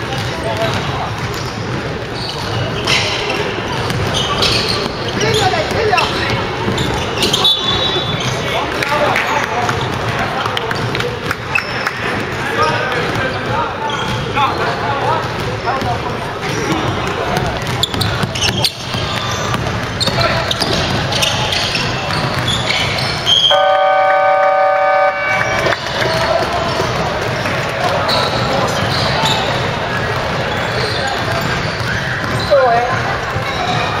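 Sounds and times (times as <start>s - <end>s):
basketballs bouncing on hardwood: 0.0s - 8.8s, 9.4s - 23.4s, 25.4s - 34.0s
players' voices: 0.0s - 34.0s
scoreboard buzzer: 23.5s - 25.8s.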